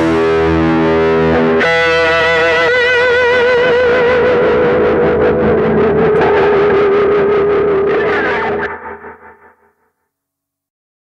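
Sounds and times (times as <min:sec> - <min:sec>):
distorted electric guitar note: 0:00.0 - 0:09.8.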